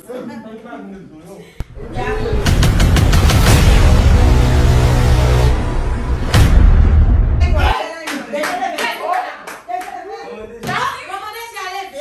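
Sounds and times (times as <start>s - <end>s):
hand claps: 8.0s - 10.0s.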